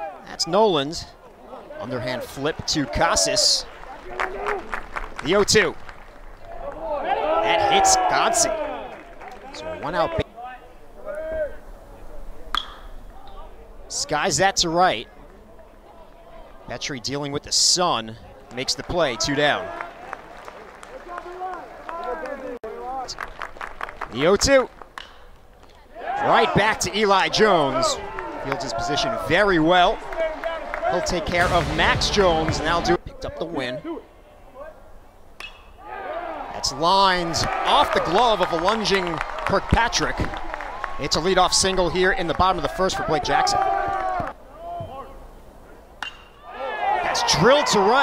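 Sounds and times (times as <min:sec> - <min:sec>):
metal bat striking ball: 0:12.5 - 0:13.0, 0:35.4 - 0:35.8, 0:46.0 - 0:46.4.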